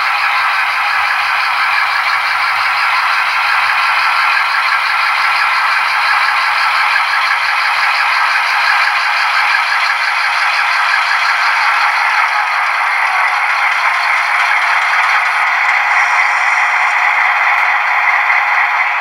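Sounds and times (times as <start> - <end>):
model locomotive running on track: 0.0 - 19.0.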